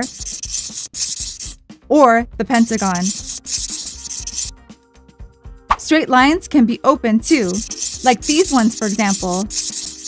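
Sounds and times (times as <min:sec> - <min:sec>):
pencil scratching on paper: 0:00.0 - 0:01.6, 0:02.5 - 0:04.5, 0:07.3 - 0:10.0.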